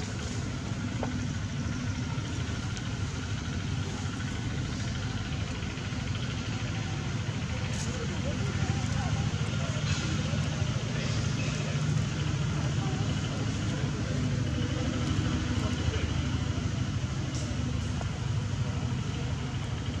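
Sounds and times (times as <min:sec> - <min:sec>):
faint voices: 0:00.0 - 0:20.0
low engine rumble: 0:00.0 - 0:20.0.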